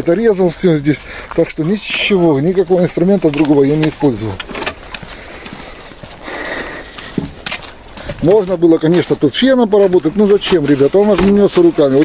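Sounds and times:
footsteps: 0:00.0 - 0:12.0.

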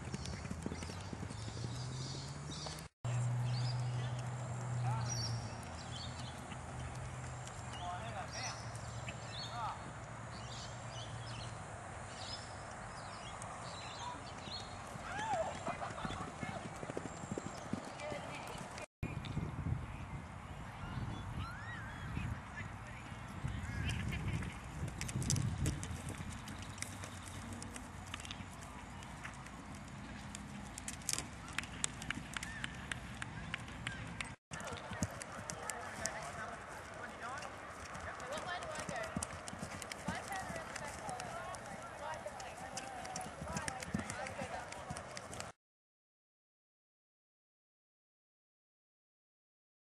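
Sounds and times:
horse hooves galloping on grass: 0:00.0 - 0:18.9, 0:22.4 - 0:45.5
people talking: 0:33.9 - 0:39.2, 0:40.0 - 0:45.2.

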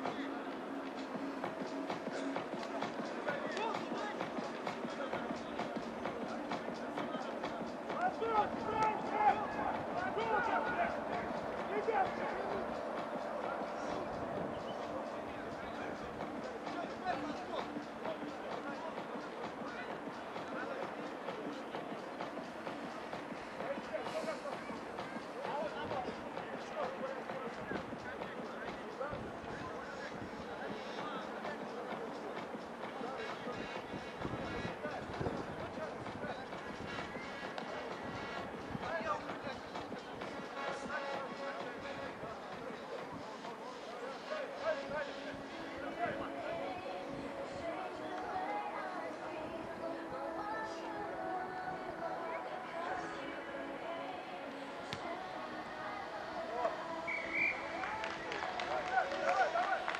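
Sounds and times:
outdoor background noise: 0:00.0 - 0:59.9
distant players calling: 0:07.6 - 0:18.6, 0:56.6 - 0:59.9.

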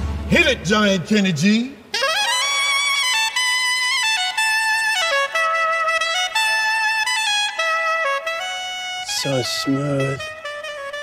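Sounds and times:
soprano saxophone melody: 0:01.9 - 0:11.0.

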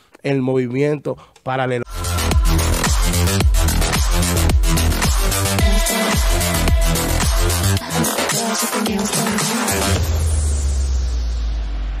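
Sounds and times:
deep bass boom: 0:10.0 - 0:12.0.

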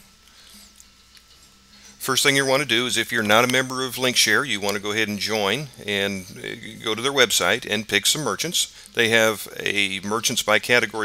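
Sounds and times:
faint hum and hiss: 0:00.0 - 0:11.0.

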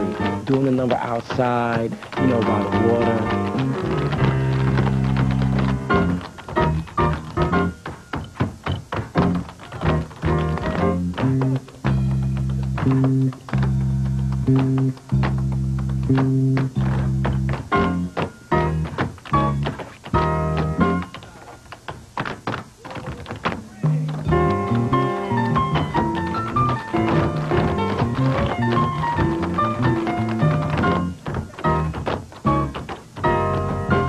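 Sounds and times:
jazz swing band music: 0:00.0 - 0:21.2, 0:23.8 - 0:34.0
tap shoes on pavement: 0:00.0 - 0:34.0.

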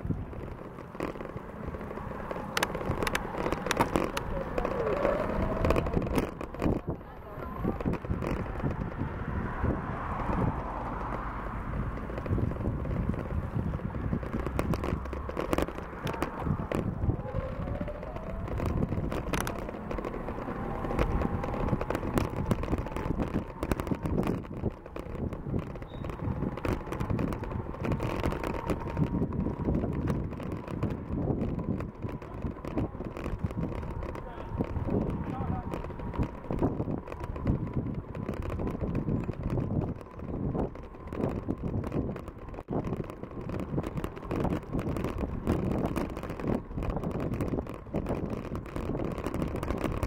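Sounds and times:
bicycle rattles and knocks: 0:00.0 - 0:50.0
tyre noise on asphalt: 0:00.0 - 0:50.0
wind buffeting microphone: 0:00.0 - 0:50.0.

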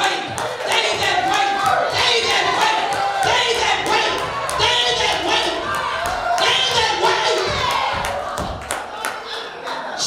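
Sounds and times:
voices shouting: 0:00.0 - 0:09.7
congregation clapping rhythmically: 0:00.0 - 0:10.0.

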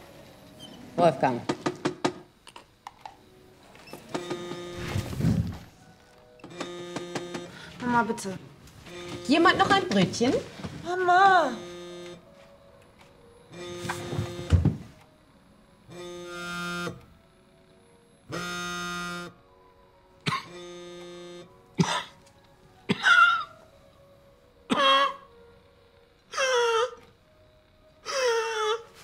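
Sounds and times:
phone vibrating on table: 0:03.9 - 0:05.7, 0:06.4 - 0:07.8, 0:08.8 - 0:10.4, 0:11.2 - 0:12.3, 0:13.4 - 0:15.0, 0:15.8 - 0:17.1, 0:18.2 - 0:19.4, 0:20.3 - 0:21.6.

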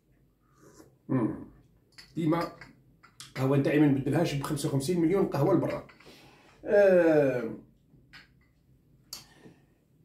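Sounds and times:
man sipping coffee: 0:00.3 - 0:01.1.

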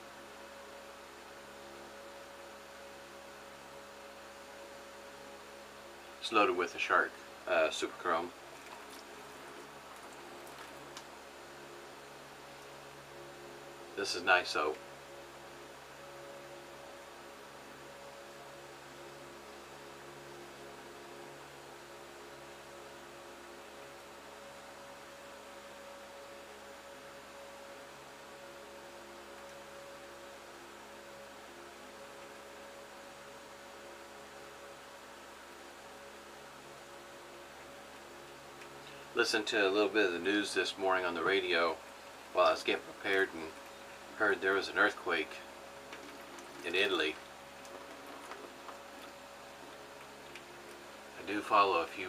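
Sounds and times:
faint electrical hum: 0:00.0 - 0:52.0
soft hiss: 0:00.0 - 0:52.0.

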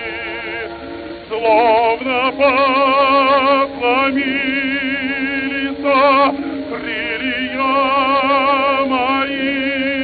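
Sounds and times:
musical accompaniment: 0:00.0 - 0:10.0
operatic tenor singing: 0:00.0 - 0:10.0.

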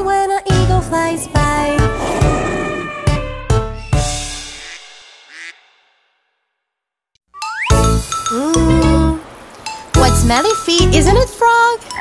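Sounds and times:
rising swoosh: 0:00.8 - 0:03.9.

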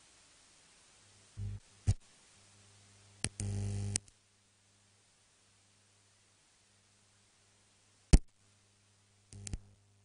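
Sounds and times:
electrical mains hum: 0:00.0 - 0:10.0
clicks: 0:03.2 - 0:04.2, 0:09.3 - 0:09.7.

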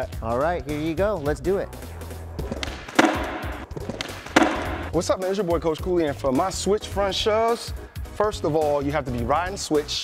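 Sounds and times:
background music: 0:00.0 - 0:10.0
skateboard tail snapping on concrete: 0:02.4 - 0:04.9.

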